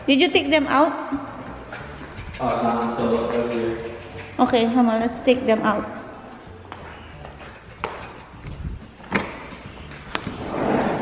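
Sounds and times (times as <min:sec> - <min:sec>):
glass door sliding on track: 0:10.1 - 0:11.0.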